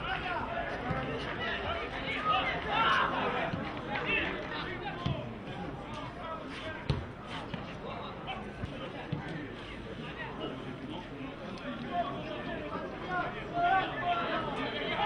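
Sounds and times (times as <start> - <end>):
players shouting: 0.0 - 7.7, 11.9 - 15.0
spectators chattering: 0.0 - 15.0.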